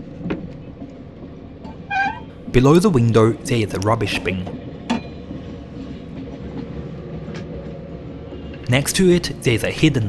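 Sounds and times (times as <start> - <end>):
train rumbling on track: 0.0 - 10.0.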